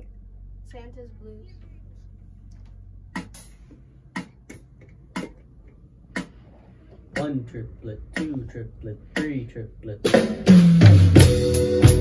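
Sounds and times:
drum kit: 3.1s - 5.5s, 6.1s - 12.0s.

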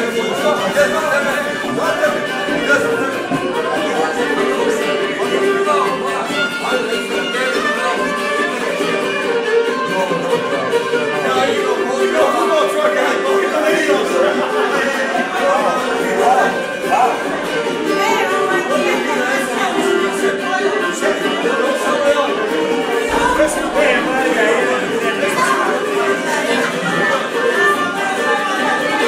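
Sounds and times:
folk music on violin and tambura: 0.0s - 29.0s
overlapping voices in crowded room: 0.0s - 29.0s
people talking: 0.0s - 29.0s.

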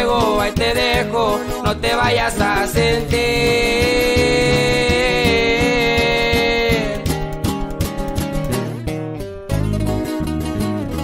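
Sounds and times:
bass line: 0.0s - 11.0s
plucked acoustic guitar runs: 0.0s - 11.0s.

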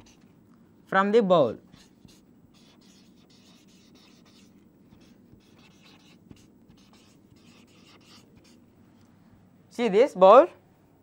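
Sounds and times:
marker pen writing on paper: 0.0s - 0.3s, 1.7s - 8.6s.

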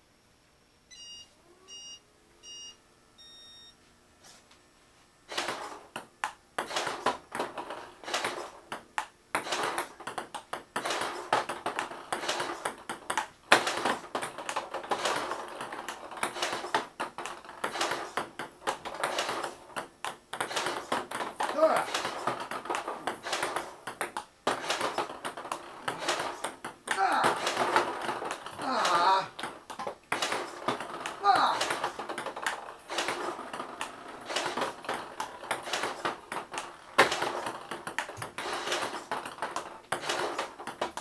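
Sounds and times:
electronic countdown beeps: 0.9s - 3.8s
table tennis rally: 5.3s - 41.0s.

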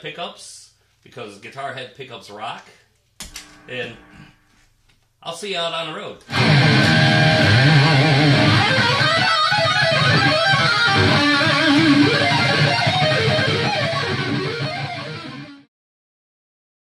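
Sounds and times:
electric guitar through amplifier: 3.2s - 4.5s, 6.3s - 15.7s.

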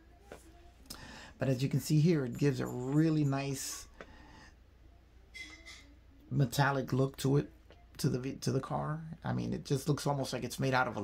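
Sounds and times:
low steady hum: 0.0s - 11.0s
faint intake of breath: 0.9s - 1.4s, 4.0s - 4.6s.

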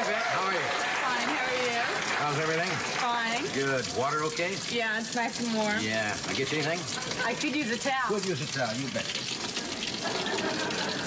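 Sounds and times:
shower spraying water: 0.0s - 11.0s.

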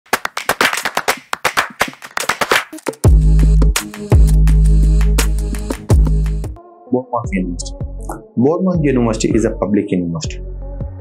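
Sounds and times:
sharp clap-like percussion hits: 0.1s - 6.4s.

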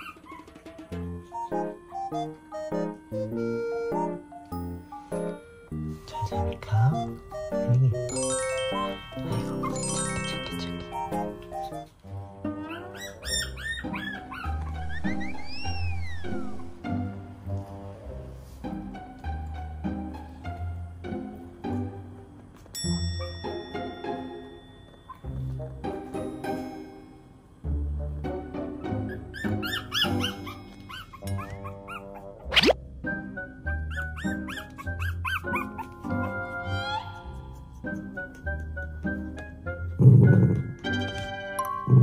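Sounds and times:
puppy squealing: 0.0s - 0.6s, 12.5s - 16.8s, 28.9s - 32.8s, 33.9s - 38.8s
cheerful background music: 0.0s - 42.0s
cheerful music with bass line: 0.9s - 12.0s, 37.3s - 42.0s
short high yelp-like calls: 14.7s - 16.5s.

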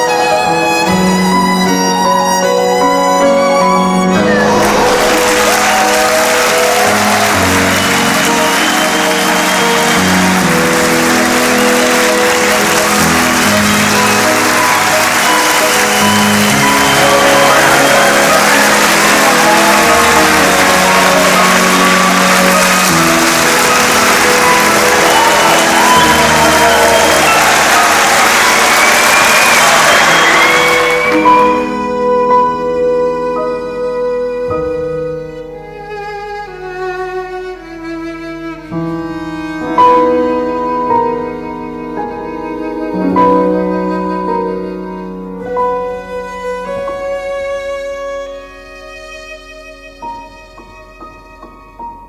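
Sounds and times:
audience applauding: 0.0s - 31.9s
music with sustained notes: 0.0s - 52.0s
people cheering: 2.7s - 32.6s.

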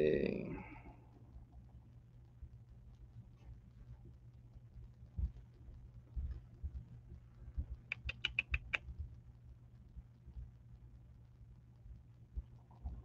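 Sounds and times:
steady low hum: 0.0s - 13.0s
soft low thumps: 4.8s - 7.9s
sharp clicks: 7.9s - 8.9s.

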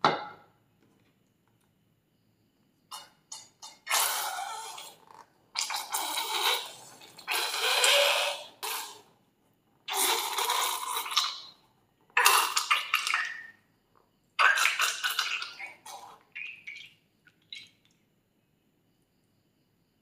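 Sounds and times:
slime squeezing out of balloon: 3.8s - 9.0s, 9.9s - 11.5s, 12.2s - 13.5s, 14.4s - 16.9s.

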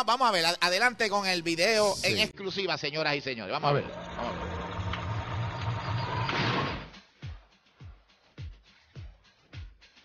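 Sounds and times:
low pulsing throb: 3.8s - 6.2s.

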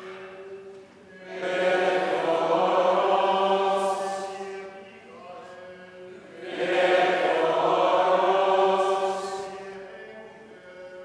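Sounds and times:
choir chanting held notes: 0.0s - 11.0s.

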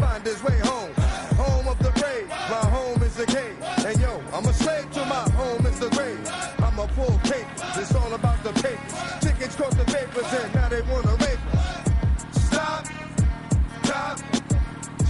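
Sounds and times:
hip hop music: 0.0s - 15.0s
ticking hi-hats: 0.0s - 15.0s
deep sliding bass notes: 4.0s - 10.0s, 10.6s - 12.7s.

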